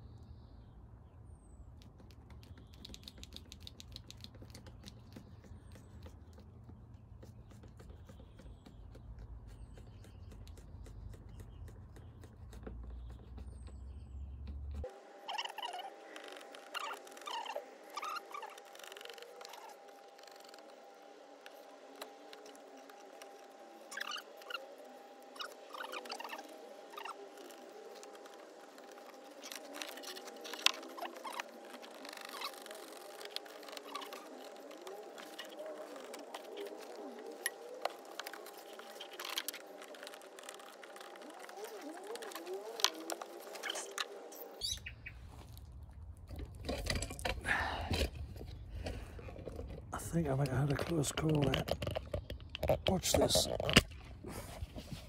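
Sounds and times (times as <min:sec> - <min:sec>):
faint steady hum: 0:00.0 - 0:55.0.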